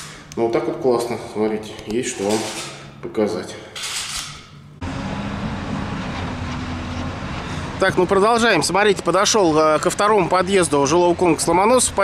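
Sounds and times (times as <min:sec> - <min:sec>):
engine running low rumble: 0:04.7 - 0:12.0.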